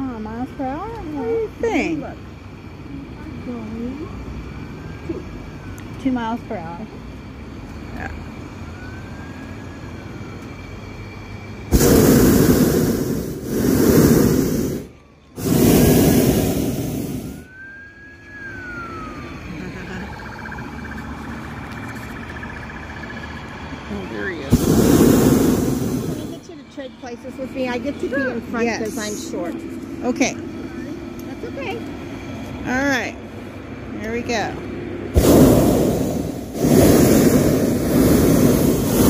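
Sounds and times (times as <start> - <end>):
propane burner blasts: 0.0 - 39.0.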